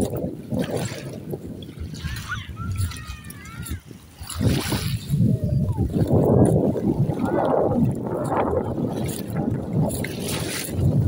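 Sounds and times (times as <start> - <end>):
small waves washing onto shore: 0.0 - 11.0
wind buffeting microphone: 0.0 - 11.0.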